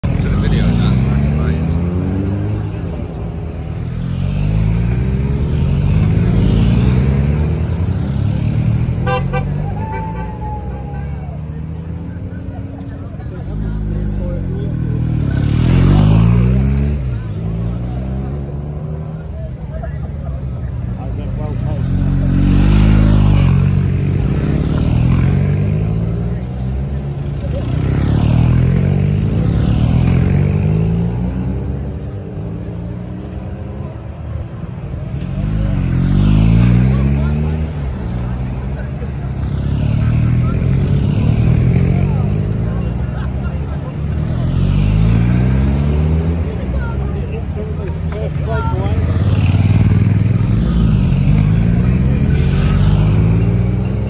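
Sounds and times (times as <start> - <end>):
vehicles passing by: 0.0 - 54.0.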